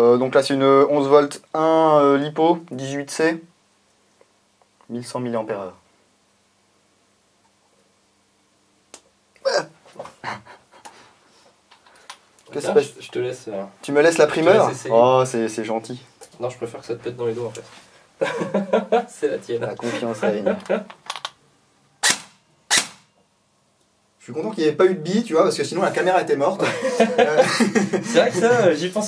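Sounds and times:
airsoft rifle shots: 22.0 - 23.1.

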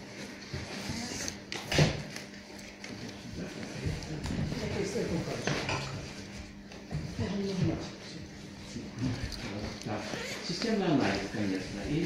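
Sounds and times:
man speaking indistinctly: 8.6 - 12.0.

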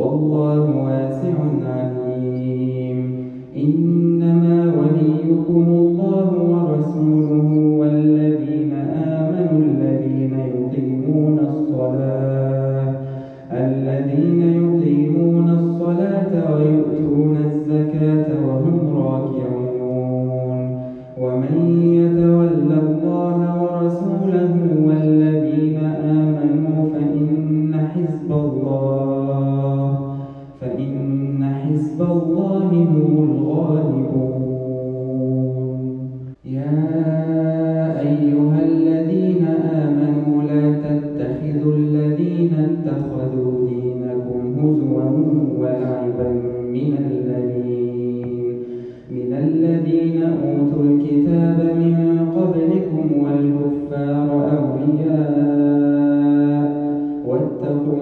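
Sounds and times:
man chanting melodically: 0.0 - 58.0.

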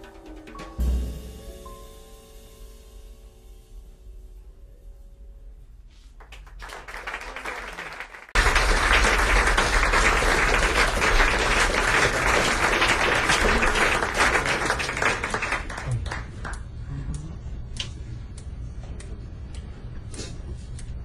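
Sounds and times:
audience applause: 6.2 - 16.6.

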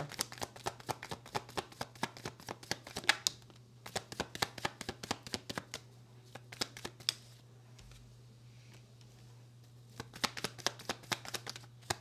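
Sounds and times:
cards being shuffled: 0.0 - 8.0, 9.9 - 12.0.

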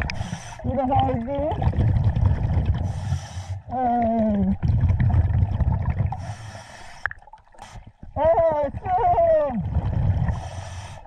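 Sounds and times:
rumble of exhaled bubbles: 0.0 - 6.4, 7.0 - 10.6
regulator inhalation hiss: 2.9 - 3.6, 6.2 - 7.9, 10.4 - 11.0.

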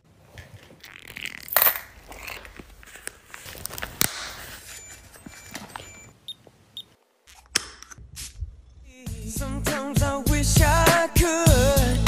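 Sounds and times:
handling rustle: 0.1 - 6.6.

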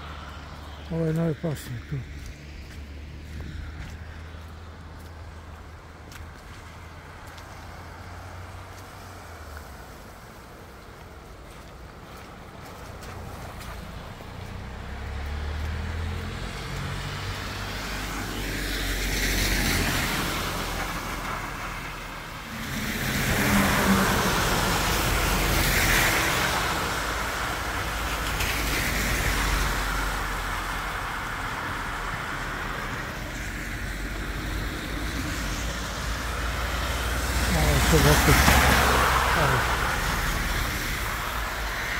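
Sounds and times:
tyres splashing through water: 0.0 - 41.9.

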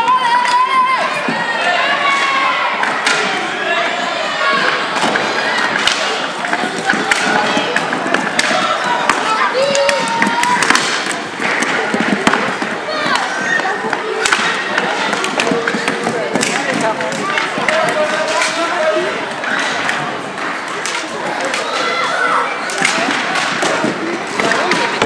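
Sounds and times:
hockey sticks clicking on floor: 0.0 - 3.4, 4.4 - 25.0
voices and shouts: 0.0 - 25.0.

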